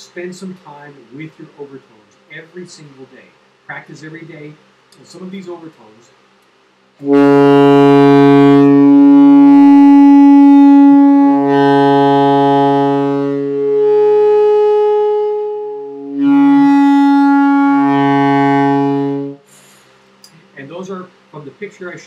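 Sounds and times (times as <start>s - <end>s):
saxophone sustained tones: 7.0s - 19.5s.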